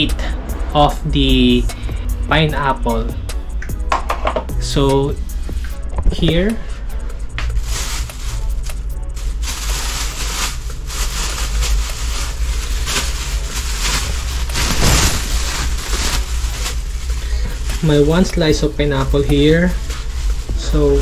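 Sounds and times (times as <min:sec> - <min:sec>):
plastic bags crinkling: 0:07.5 - 0:21.0.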